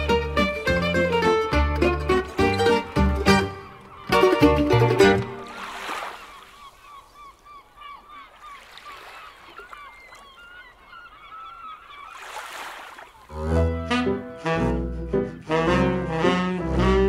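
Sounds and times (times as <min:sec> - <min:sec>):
music with bass line: 0:00.0 - 0:05.3
flock of birds calling: 0:05.9 - 0:12.3.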